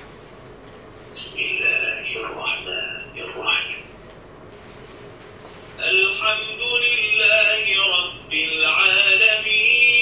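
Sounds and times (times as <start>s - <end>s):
man chanting recitation through small speaker: 1.2s - 3.9s, 5.8s - 10.0s.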